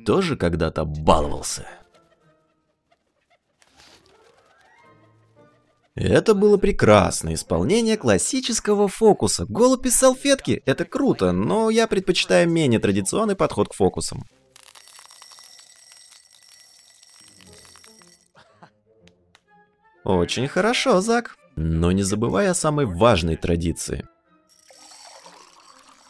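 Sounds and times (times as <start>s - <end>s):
faint bell-like ringing: 14.6s - 18.3s, 24.5s - 26.0s
granules ticking into glass: 14.6s - 18.3s, 24.5s - 26.0s.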